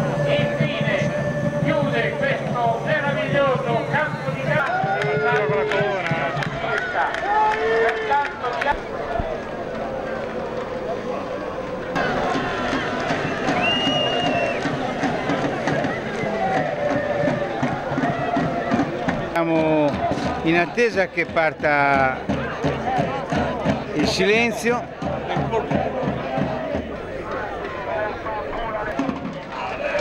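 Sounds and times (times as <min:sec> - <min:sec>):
crowd shouting: 0:00.0 - 0:30.0
short high whistle: 0:13.3 - 0:14.6.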